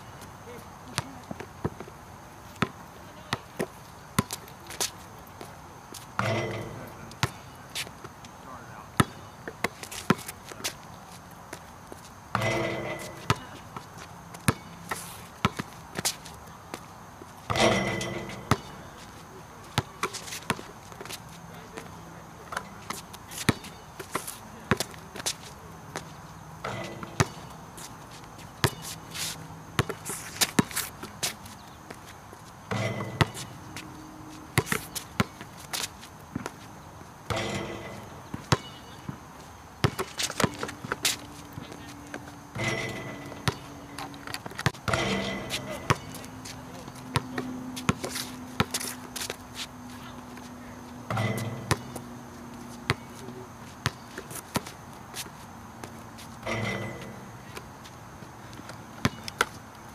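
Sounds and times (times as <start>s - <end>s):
basketball bouncing on hard court: 17.5s - 18.8s, 29.8s - 30.8s, 32.7s - 33.5s, 34.6s - 36.6s, 39.8s - 41.7s, 42.6s - 48.8s, 51.1s - 52.1s, 52.7s - 53.2s, 59.0s - 59.6s.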